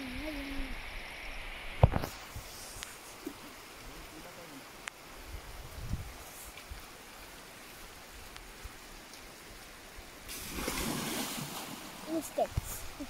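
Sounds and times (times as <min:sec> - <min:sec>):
river water running: 0:00.0 - 0:13.0
loud rush of water: 0:00.8 - 0:13.0.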